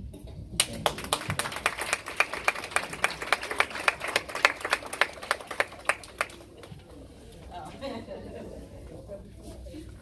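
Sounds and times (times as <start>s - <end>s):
small group applauding: 0.6s - 7.0s.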